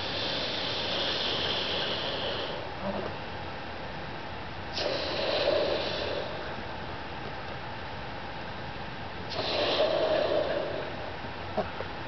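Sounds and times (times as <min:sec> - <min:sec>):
breath puffs blowing up balloon: 0:00.0 - 0:03.2, 0:04.7 - 0:06.5, 0:09.3 - 0:11.1.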